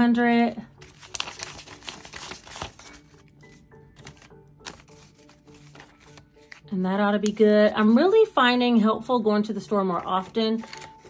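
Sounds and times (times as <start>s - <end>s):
soft background music: 0.0s - 11.0s
banknotes being flicked: 4.0s - 6.6s.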